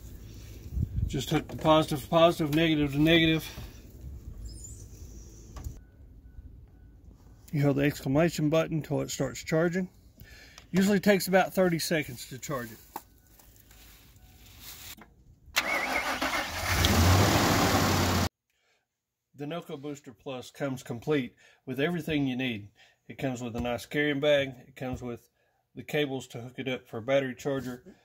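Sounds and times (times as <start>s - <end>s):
truck engine cranking and running: 15.6s - 18.3s.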